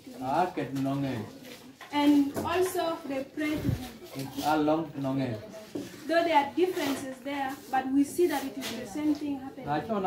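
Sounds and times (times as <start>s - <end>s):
man speaking: 9.6s - 10.0s.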